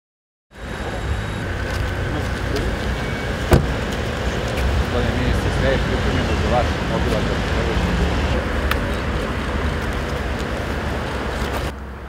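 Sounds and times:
outdoor background rumble: 0:00.5 - 0:12.0.

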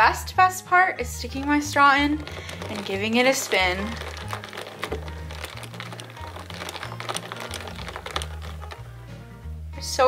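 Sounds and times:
ice clinking against glass: 0:02.2 - 0:08.8
background music with slow bass: 0:03.8 - 0:10.0.

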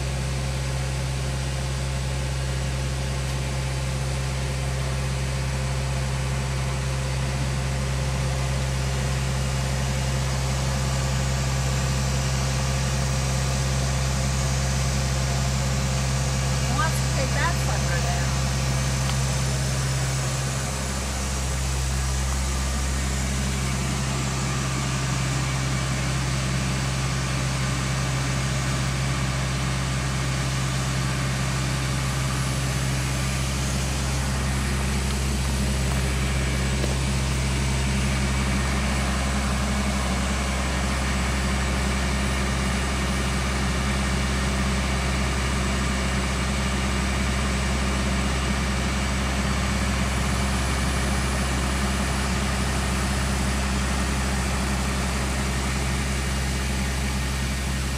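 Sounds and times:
truck engine idling: 0:00.0 - 0:57.9.

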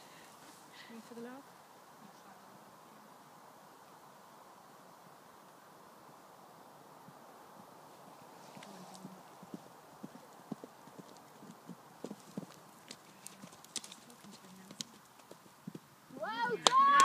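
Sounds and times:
pony hoofbeats on grass: 0:08.2 - 0:16.0.

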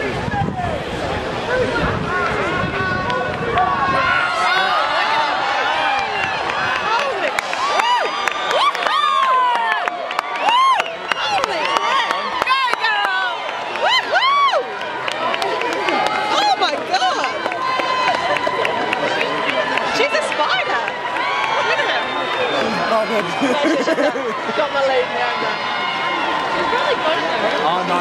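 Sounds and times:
crowd cheering and shouting: 0:00.0 - 0:28.0
individual whoops and yells: 0:07.6 - 0:14.7
babble of voices: 0:13.8 - 0:28.0.

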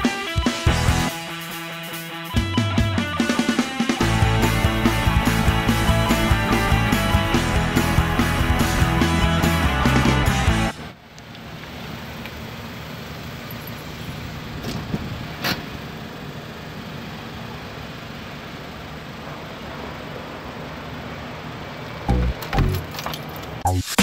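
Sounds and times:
music with heavy beat: 0:00.0 - 0:10.8, 0:22.1 - 0:22.9, 0:23.6 - 0:24.0
car engine running: 0:03.3 - 0:23.7.

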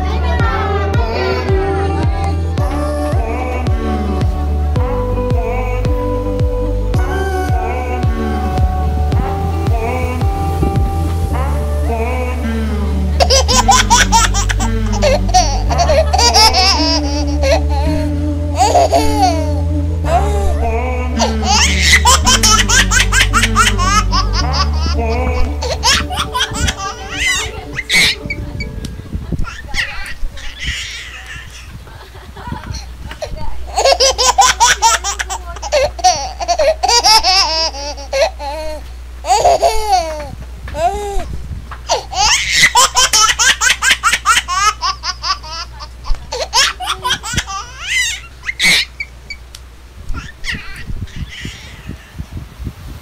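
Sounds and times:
music with low bass notes: 0:00.0 - 0:30.3, 0:32.3 - 0:47.8
children laughing and shrieking: 0:13.1 - 0:19.4, 0:20.0 - 0:41.3, 0:41.9 - 0:49.1, 0:50.1 - 0:52.2.

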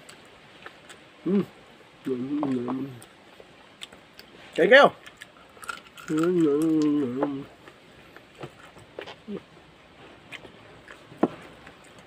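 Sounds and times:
person humming mmm: 0:01.2 - 0:03.1, 0:06.0 - 0:07.6, 0:09.2 - 0:09.5
clicking mouth sounds: 0:06.0 - 0:07.4.

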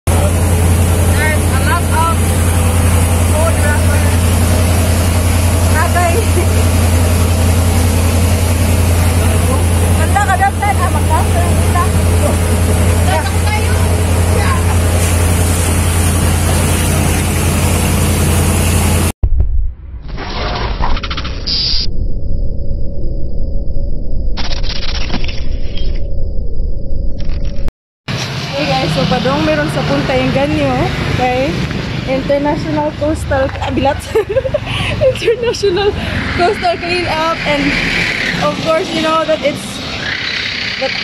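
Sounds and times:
boat engine humming: 0:00.0 - 0:19.2, 0:28.2 - 0:41.0
voices calling out: 0:08.6 - 0:15.1, 0:28.6 - 0:41.0.

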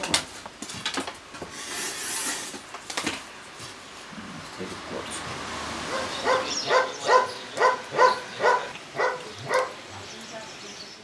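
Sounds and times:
dog barking: 0:05.9 - 0:09.8.

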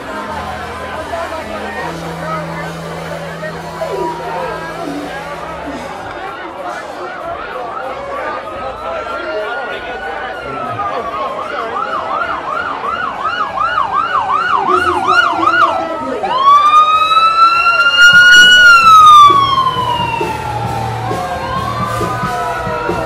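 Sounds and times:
ambulance siren: 0:00.0 - 0:06.4, 0:07.7 - 0:23.0
low rumble: 0:00.0 - 0:06.5.

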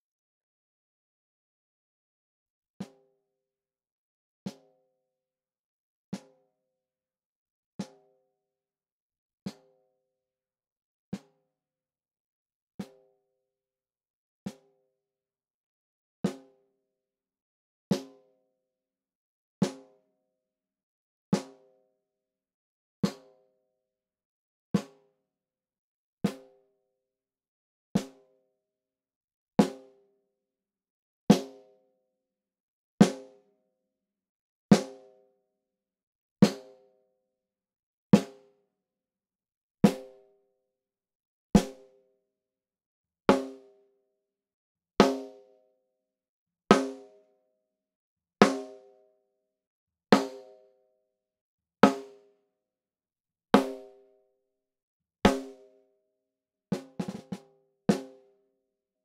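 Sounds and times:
snare drum pattern: 0:53.6 - 0:53.8, 0:55.3 - 0:55.5, 0:56.8 - 0:58.0
snare drum strokes: 0:56.8 - 0:58.0.

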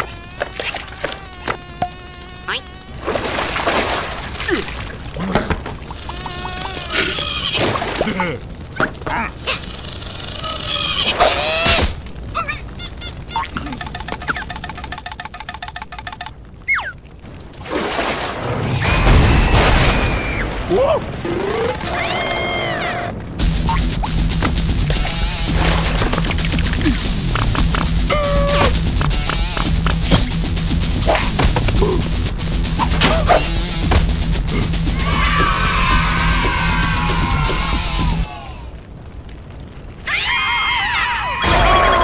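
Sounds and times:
fire flaring up: 0:00.0 - 0:15.6, 0:16.2 - 0:42.0
low rumble of burning flames: 0:00.0 - 0:42.0
squeaky cartoon cries: 0:06.0 - 0:07.6, 0:12.4 - 0:13.6.

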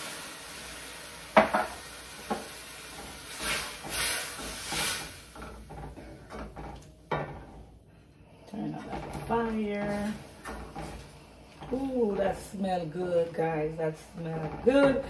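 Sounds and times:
wine sizzling in a pan: 0:00.0 - 0:07.6, 0:08.7 - 0:15.0
wooden spoon scraping a pan: 0:02.3 - 0:07.6, 0:08.5 - 0:15.0.

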